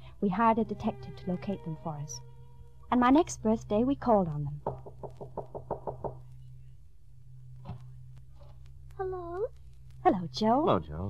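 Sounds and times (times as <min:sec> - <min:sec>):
low recording hum: 0:00.0 - 0:11.0
knocking on a door: 0:04.6 - 0:06.3.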